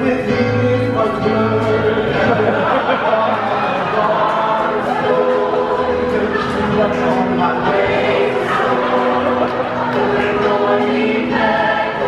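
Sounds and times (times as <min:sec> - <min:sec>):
mixed chorus singing: 0:00.0 - 0:12.0.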